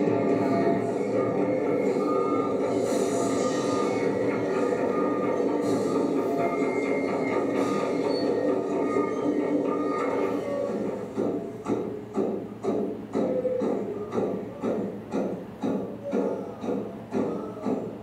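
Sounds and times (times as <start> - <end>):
evenly spaced beats: 0.0 - 18.0
film soundtrack over loudspeakers: 0.0 - 18.0.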